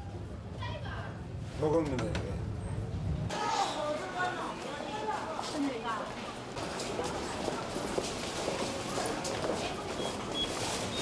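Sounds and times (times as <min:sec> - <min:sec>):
footsteps of passengers: 0:01.4 - 0:11.0
turnstile clacks: 0:06.0 - 0:11.0.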